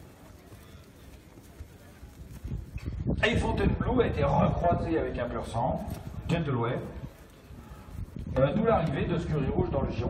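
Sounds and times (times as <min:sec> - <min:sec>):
horse hooves on grass: 0:00.0 - 0:09.7.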